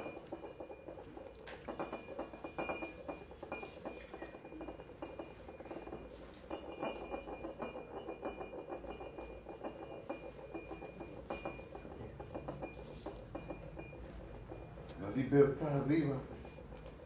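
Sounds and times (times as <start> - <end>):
faint high ringing tone: 0.0 - 9.2, 9.8 - 17.0
small cymbals clinking: 0.0 - 17.0.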